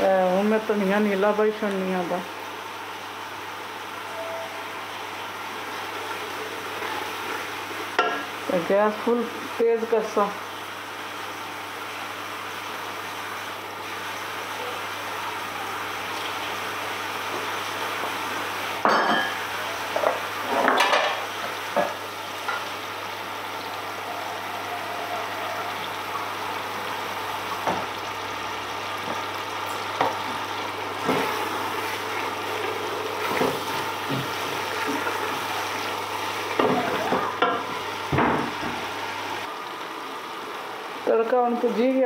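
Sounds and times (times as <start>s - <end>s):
food sizzling in a pot: 0.0s - 42.0s.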